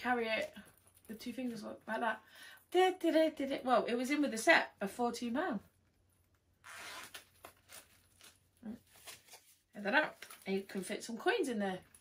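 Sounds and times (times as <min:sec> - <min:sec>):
coin purse zip opening: 0:06.6 - 0:07.5.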